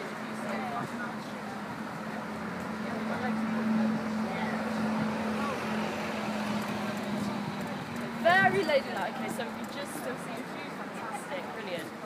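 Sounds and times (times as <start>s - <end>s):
faint voices: 0.0s - 12.0s
road noise: 0.0s - 12.0s
traffic engine hum: 0.0s - 12.0s.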